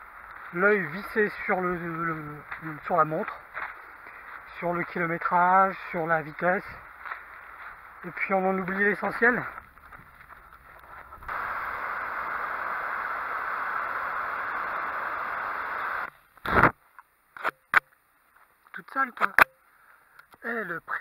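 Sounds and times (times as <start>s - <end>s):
steady hiss: 0.0s - 17.4s.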